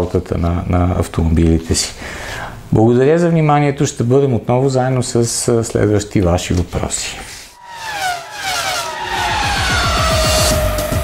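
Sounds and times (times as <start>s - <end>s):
electronic music: 7.6s - 11.0s
racing car engine sweeping past: 7.6s - 11.0s.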